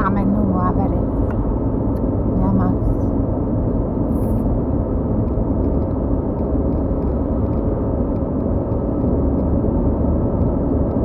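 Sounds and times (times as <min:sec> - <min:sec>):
car engine hum: 0:00.0 - 0:11.0.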